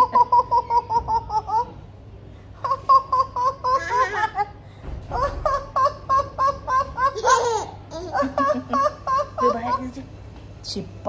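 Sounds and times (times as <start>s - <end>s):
baby giggling: 0.0s - 1.8s, 2.6s - 10.1s
lower-pitched laughter: 0.0s - 1.8s, 2.6s - 10.0s.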